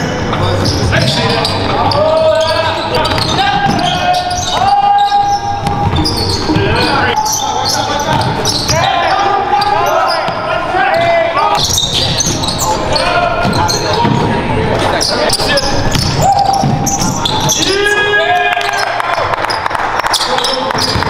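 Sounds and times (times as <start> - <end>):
players shouting: 0.6 - 14.2, 14.8 - 21.0
basketball bouncing on hardwood floor: 5.6 - 6.8.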